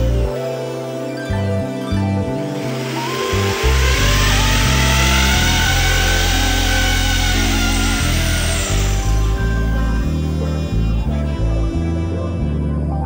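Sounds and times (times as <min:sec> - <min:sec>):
background music with bass: 0:00.0 - 0:13.0
electric drill boring into wall: 0:02.5 - 0:11.1.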